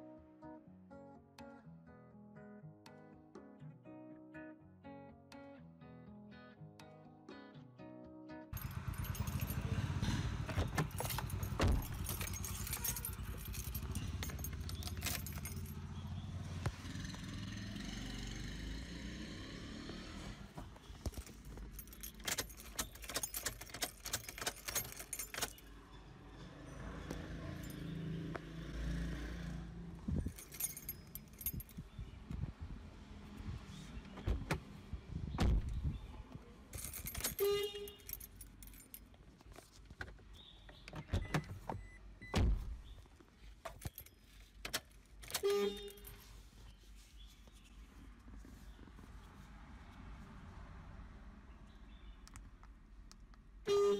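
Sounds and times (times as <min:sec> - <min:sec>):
car keys jangling: 0:08.6 - 0:16.0, 0:20.8 - 0:25.8, 0:30.1 - 0:32.0, 0:36.7 - 0:41.6, 0:43.6 - 0:46.5
ignition key clicks: 0:21.9 - 0:25.6.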